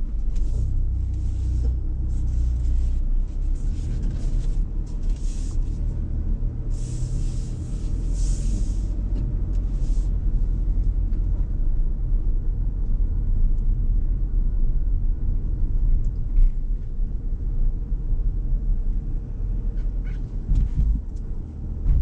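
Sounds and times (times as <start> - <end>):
car engine and tyre noise: 0.0 - 22.0.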